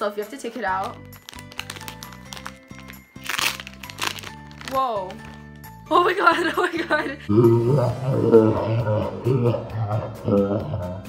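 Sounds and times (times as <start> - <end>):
plastic packaging crinkling: 0.7 - 6.0
background music with bass: 5.5 - 11.0.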